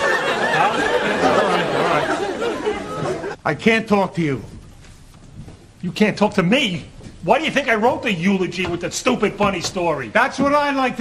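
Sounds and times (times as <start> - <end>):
people chattering: 0.0 - 3.4.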